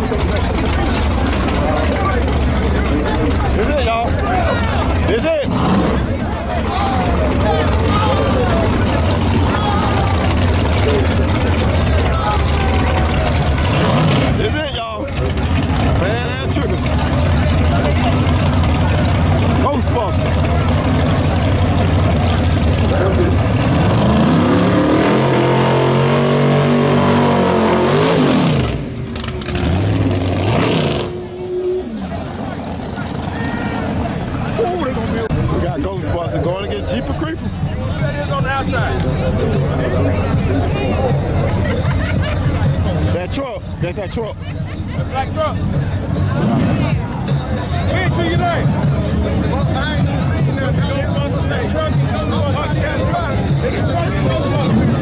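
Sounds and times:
drag car engine revving: 0:00.0 - 0:44.2, 0:45.0 - 0:55.0
crowd chatter: 0:00.0 - 0:55.0.

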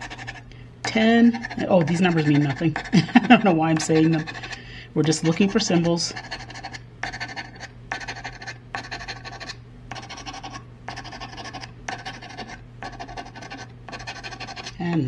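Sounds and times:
scratching lottery ticket with coin: 0:00.0 - 0:00.4, 0:01.3 - 0:14.8.

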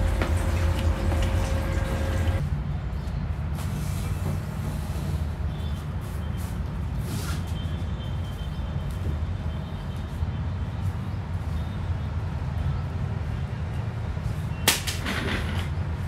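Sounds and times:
broom sweeping marble floor: 0:03.5 - 0:07.8.

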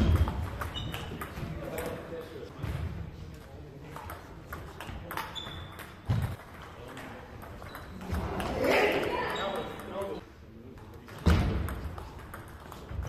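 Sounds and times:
table tennis ball hits: 0:00.0 - 0:02.1, 0:03.9 - 0:10.0.

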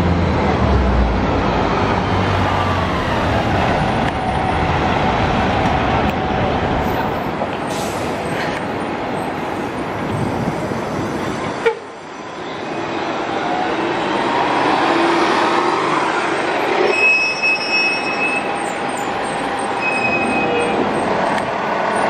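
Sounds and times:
bus engine passing: 0:00.0 - 0:22.0
tyre and traffic noise: 0:00.0 - 0:22.0
high steady squeal: 0:16.8 - 0:22.0.

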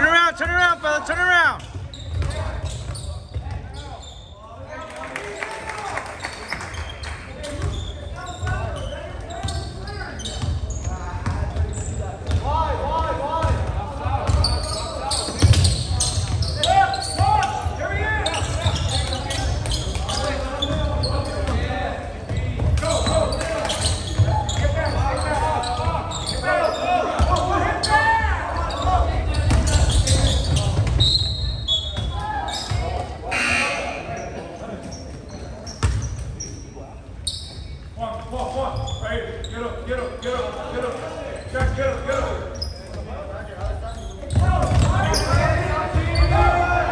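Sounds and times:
brief high tone: 0:33.3 - 0:34.1.

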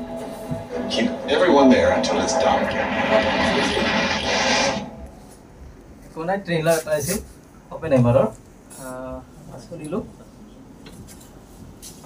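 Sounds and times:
trailer music and sound effects: 0:00.0 - 0:05.8.

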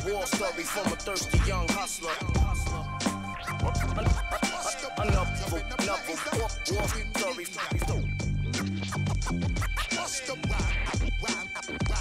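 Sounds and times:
hip-hop beat with bass line: 0:00.0 - 0:12.0
record scratching on turntable: 0:00.0 - 0:12.0.

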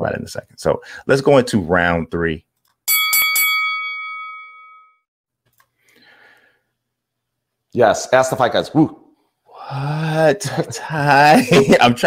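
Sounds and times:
boxing ring bell: 0:02.9 - 0:05.1.

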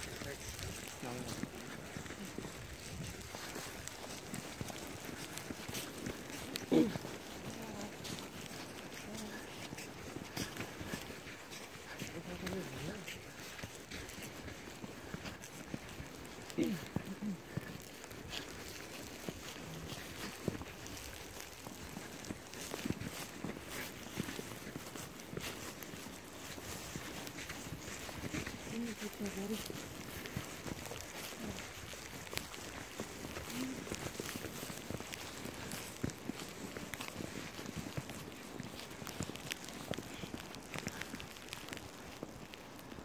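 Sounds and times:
footsteps crunching in snow: 0:00.0 - 0:43.0
faint voice murmuring: 0:06.0 - 0:08.2, 0:08.8 - 0:10.6, 0:16.4 - 0:18.5, 0:28.4 - 0:29.8, 0:30.9 - 0:31.7, 0:33.4 - 0:34.0.

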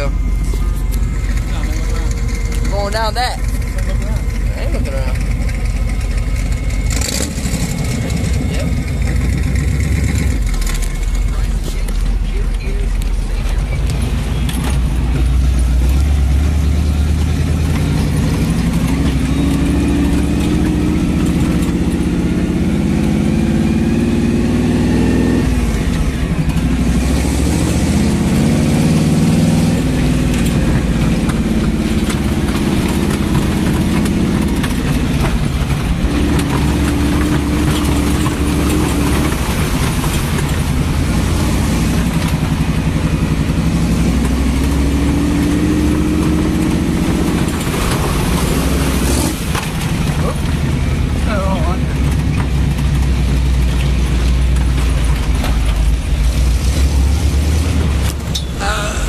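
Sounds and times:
engine accelerating: 0:00.0 - 0:59.0.

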